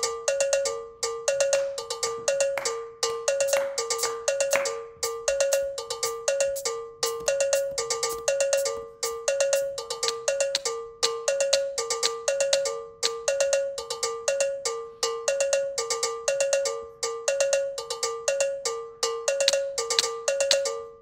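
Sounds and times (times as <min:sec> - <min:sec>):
electronic cowbell synth riff: 0:00.0 - 0:21.0.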